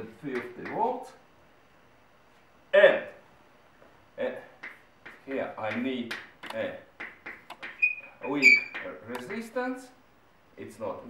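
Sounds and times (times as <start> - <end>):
chalk tapping on blackboard: 4.6 - 7.9.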